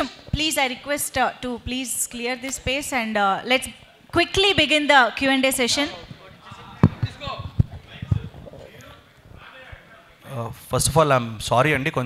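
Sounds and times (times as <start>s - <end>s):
dull thumps: 6.8s - 8.6s.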